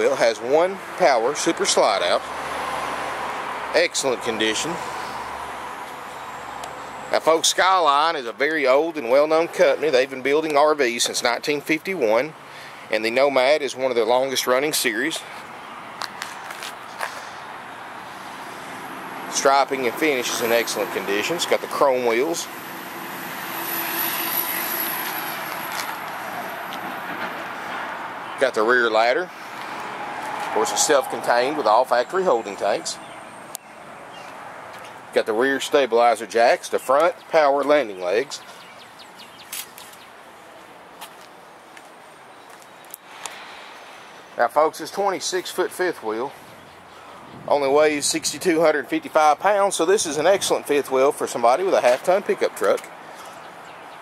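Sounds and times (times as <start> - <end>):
steady outdoor hiss: 0.0 - 54.0.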